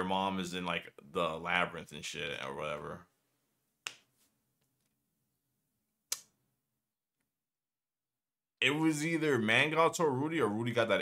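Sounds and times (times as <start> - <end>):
sharp click: 6.1 - 6.3.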